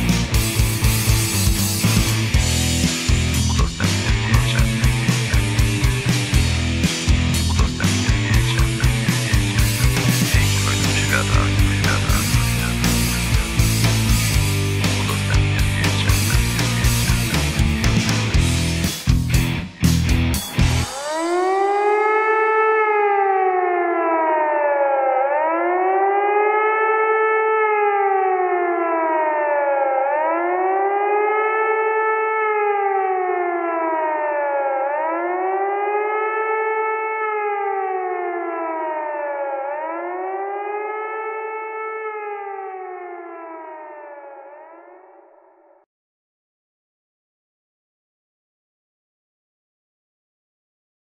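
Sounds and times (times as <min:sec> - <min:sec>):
two-tone siren wailing: 0:00.3 - 0:17.7, 0:20.6 - 0:45.8.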